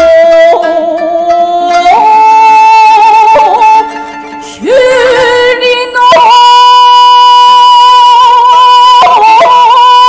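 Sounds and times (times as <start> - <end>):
woman chanting a long high note: 4.7 - 10.0.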